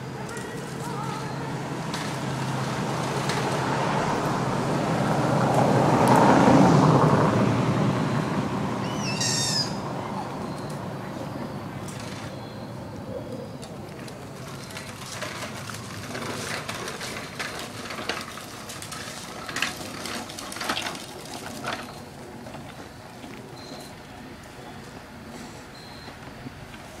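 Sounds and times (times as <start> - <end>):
plastic wheels rattling over stone: 14.0 - 22.9.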